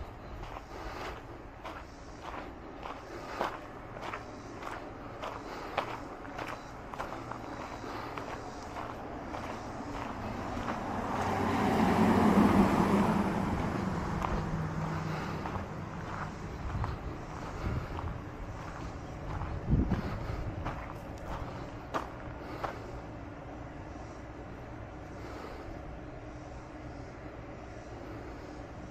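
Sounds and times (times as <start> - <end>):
light footsteps: 0.0 - 23.1
car passing: 0.0 - 24.2.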